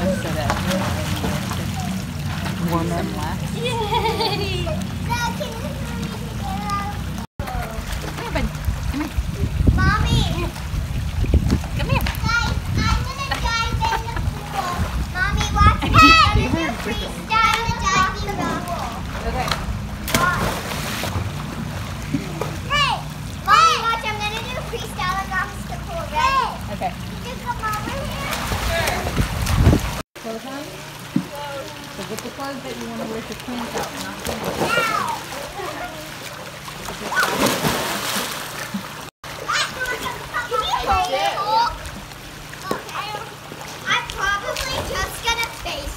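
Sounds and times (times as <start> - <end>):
water splashing: 0.0 - 45.9
children calling and shouting: 1.0 - 2.6, 3.4 - 10.6, 11.8 - 19.2, 22.1 - 29.3, 34.4 - 37.6, 38.7 - 45.9
child splashing into pool: 20.0 - 25.1, 27.6 - 30.0, 33.7 - 45.6
children shouting: 34.6 - 36.0, 39.4 - 41.8.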